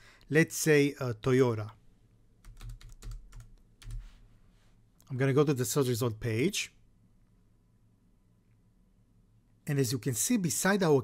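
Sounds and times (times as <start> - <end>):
typing on computer keyboard: 2.4 - 4.1.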